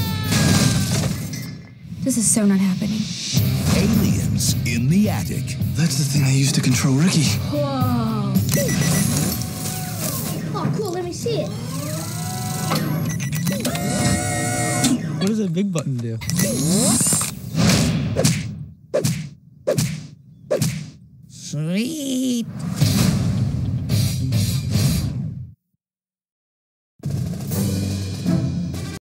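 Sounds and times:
trailer music: 2.5 - 10.4, 27.0 - 29.0
steady beeping tones: 8.5 - 9.2.

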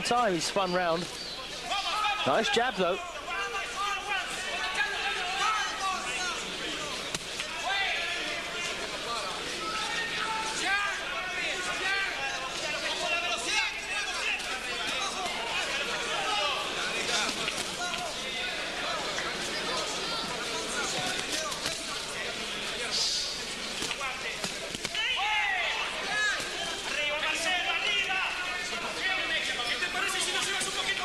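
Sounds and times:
crowd shouting: 1.5 - 23.4, 24.0 - 31.0.

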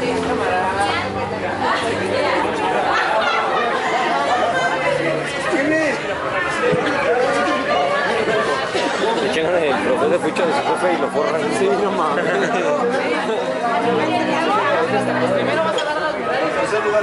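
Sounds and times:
group chatter: 0.0 - 17.0.

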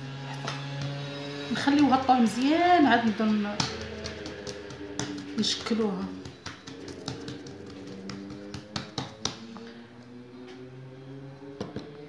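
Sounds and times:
fingertips tapping dough: 0.3 - 9.6.

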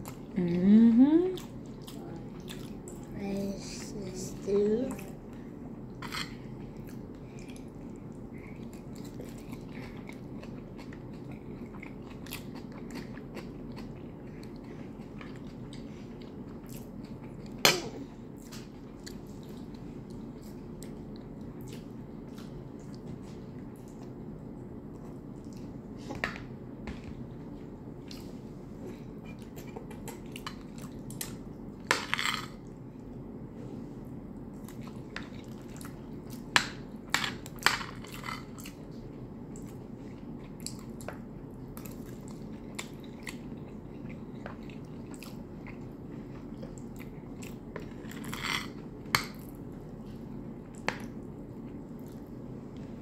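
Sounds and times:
low background hum: 0.0 - 53.0
chewing and mouth sounds: 1.3 - 3.2, 5.9 - 17.6, 34.4 - 36.8, 37.4 - 52.9
mouth chewing food: 1.4 - 3.1, 6.0 - 17.6.

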